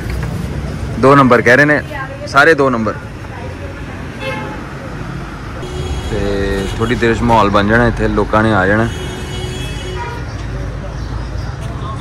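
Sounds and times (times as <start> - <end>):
busy street noise: 0.0 - 12.0
vehicle horn: 5.6 - 7.2, 8.7 - 10.3.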